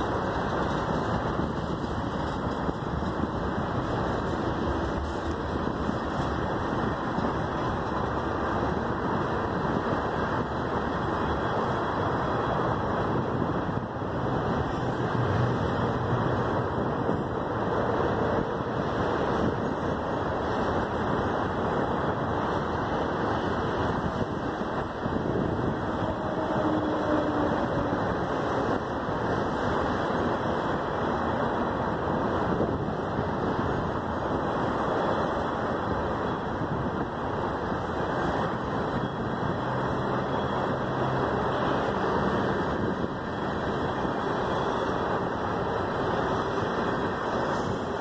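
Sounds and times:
train wheels rumbling on rails: 0.0 - 48.0.

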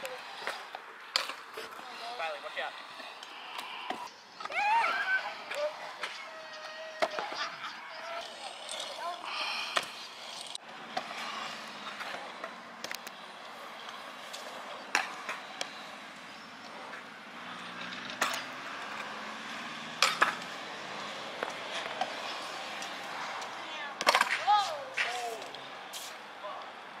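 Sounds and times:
scooter wheels rolling on concrete: 0.0 - 27.0
scooter deck clacking on concrete: 17.8 - 18.6, 20.0 - 20.5, 22.8 - 25.5.

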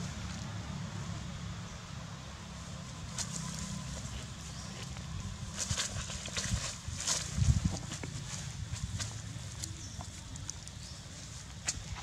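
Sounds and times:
grass and dry leaves rustling: 2.4 - 12.0
wind rumble on microphone: 5.0 - 12.0.

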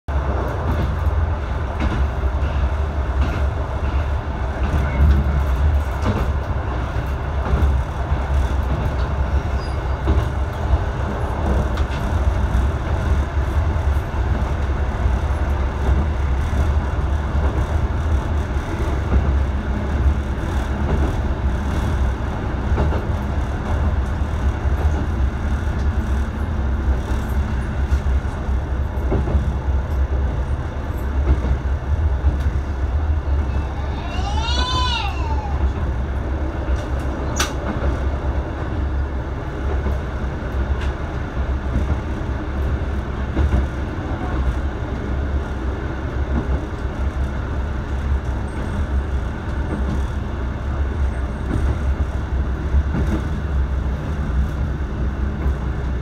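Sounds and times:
diesel railcar engine rumble: 0.1 - 56.0
wheels on rails: 0.1 - 56.0.

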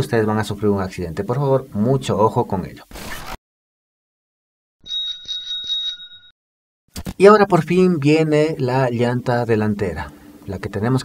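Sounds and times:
static-like noise bursts: 2.9 - 3.4
bicycle bell ringing: 4.8 - 6.3.

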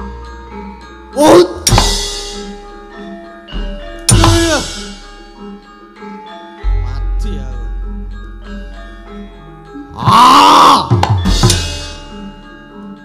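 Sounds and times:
gamelan metallophones: 0.0 - 13.0
loud shouted cry: 10.0 - 10.9.

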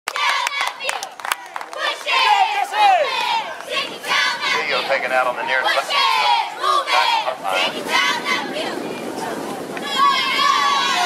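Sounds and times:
sharp hand claps: 0.1 - 2.4
cheerleaders shouting a cheer: 0.1 - 4.9, 5.6 - 11.0.

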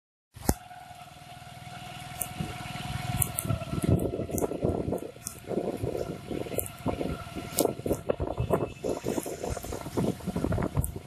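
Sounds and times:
road traffic: 0.3 - 11.0
sharp clicks: 2.1 - 2.4, 3.2 - 9.8.

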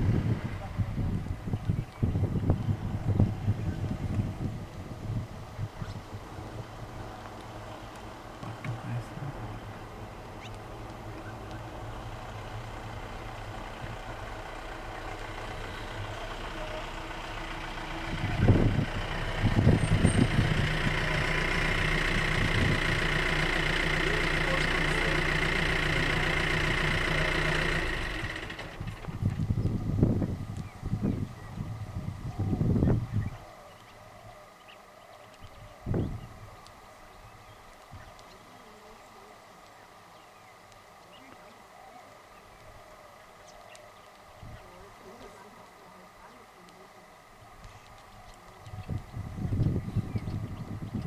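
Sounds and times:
vehicle engine running: 0.0 - 51.0.

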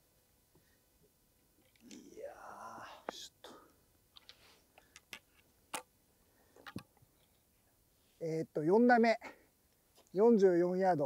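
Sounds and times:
man groaning: 1.9 - 3.6.

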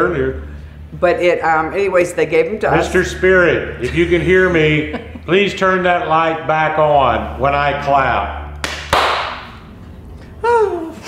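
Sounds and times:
hand clap: 8.6 - 9.6.

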